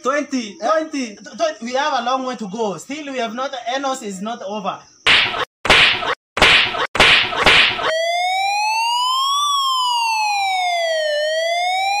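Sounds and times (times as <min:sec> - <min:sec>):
lashing strokes: 0:05.1 - 0:07.9
electronic siren tone: 0:05.4 - 0:12.0.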